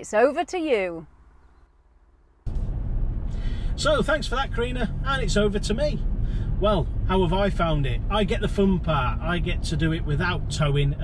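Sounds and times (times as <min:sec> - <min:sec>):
road and engine noise in cab: 0:00.0 - 0:11.0.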